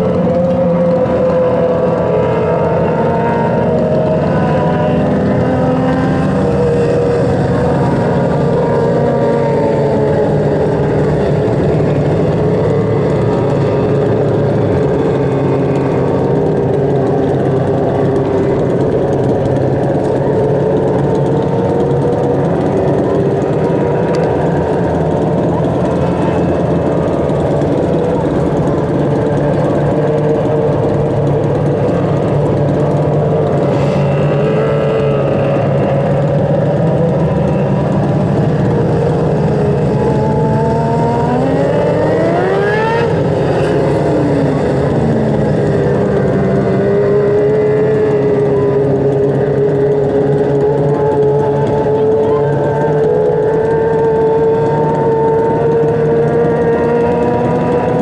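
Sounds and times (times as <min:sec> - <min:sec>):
engine pitch climbing: 0:00.0 - 0:58.0
racing car engines droning: 0:00.0 - 0:58.0.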